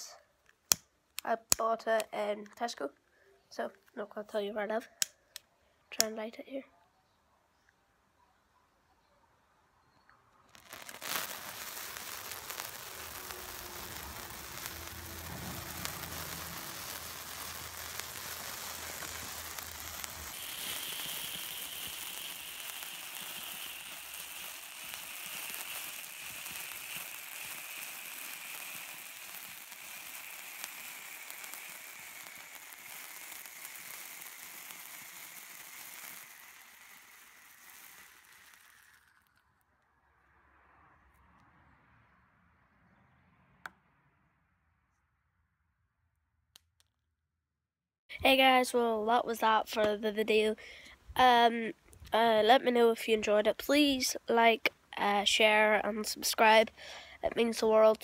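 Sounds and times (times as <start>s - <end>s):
sparkler crackling hiss: 10.5s - 39.4s, 53.6s - 58.0s.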